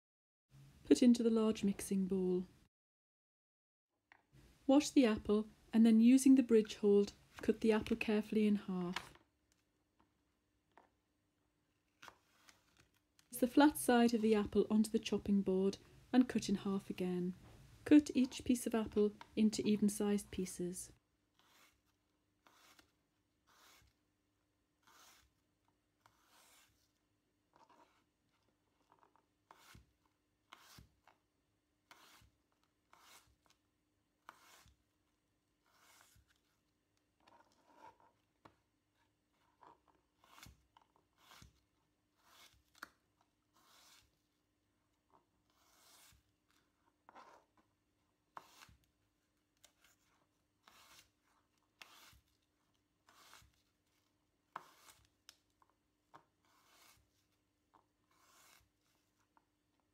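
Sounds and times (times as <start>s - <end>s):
knife cutting apple: 21.3s - 24.0s, 24.8s - 26.8s, 28.8s - 33.6s, 34.2s - 34.9s, 39.3s - 44.2s, 45.1s - 47.6s, 48.3s - 48.9s, 49.6s - 59.4s.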